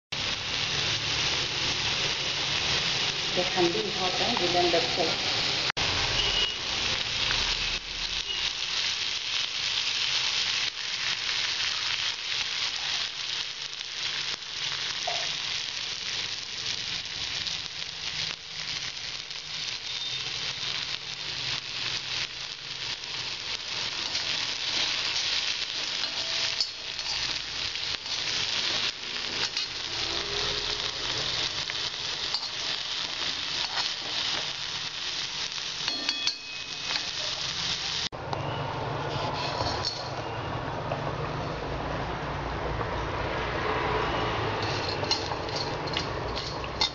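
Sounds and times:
onions frying in hot oil: 0.1 - 38.2, 42.9 - 46.9.

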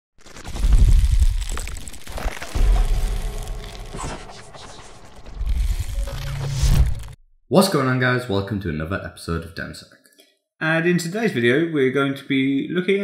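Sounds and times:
cinematic intro music: 0.5 - 7.2.

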